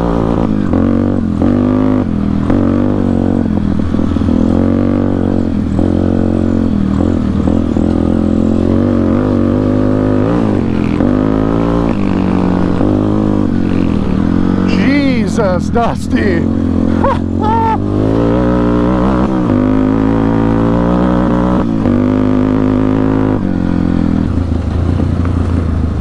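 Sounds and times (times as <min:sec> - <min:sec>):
atv engine revving: 0:00.0 - 0:26.0.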